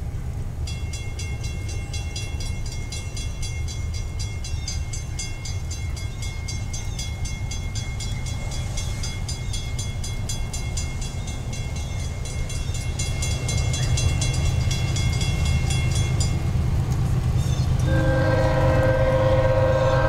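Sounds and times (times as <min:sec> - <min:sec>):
crossing bell ringing: 0:00.6 - 0:20.0.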